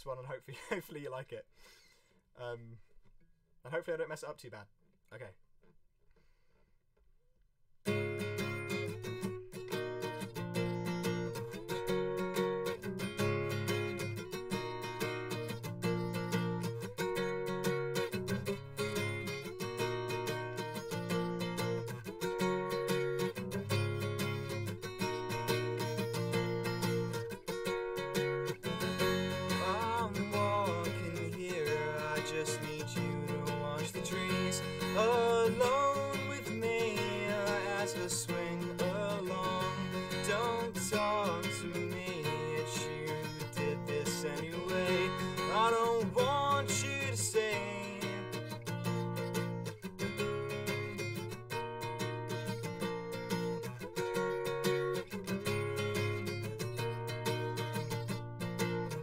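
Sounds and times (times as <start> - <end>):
acoustic guitar strummed: 7.8 - 59.0
young man singing: 28.6 - 48.5.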